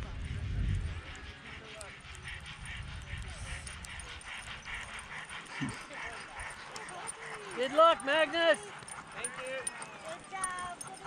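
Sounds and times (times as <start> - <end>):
paws pattering on snow: 0.1 - 11.0
sled dogs yipping and barking: 0.1 - 11.0.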